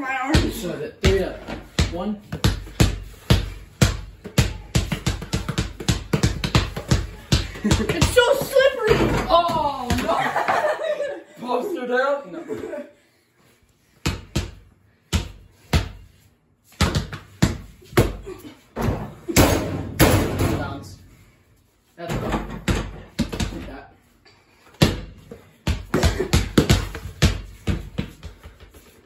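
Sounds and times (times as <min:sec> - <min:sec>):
basketball bouncing on hard floor: 0:00.3 - 0:10.2, 0:14.0 - 0:16.0, 0:16.7 - 0:18.2, 0:22.1 - 0:23.7, 0:24.8 - 0:28.8.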